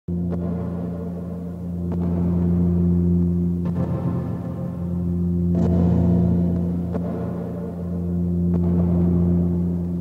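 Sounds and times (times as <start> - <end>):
ambient tape loop music: 0.1 - 10.0.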